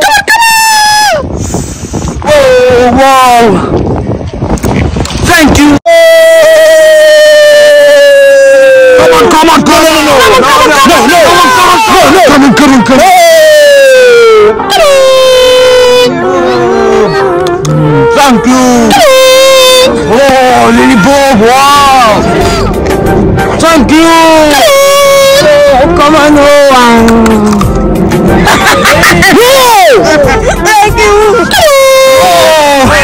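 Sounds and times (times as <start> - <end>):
voices: 8.4 - 22.8, 23.4 - 33.0
loud horn-like tone: 14.5 - 20.1.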